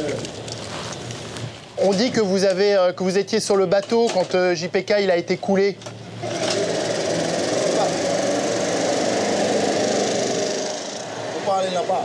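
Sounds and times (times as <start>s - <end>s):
leaf blower engine: 6.2s - 11.1s.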